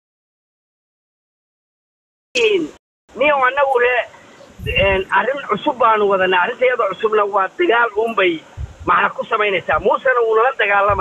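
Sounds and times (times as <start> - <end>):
man talking on phone: 2.4 - 11.0.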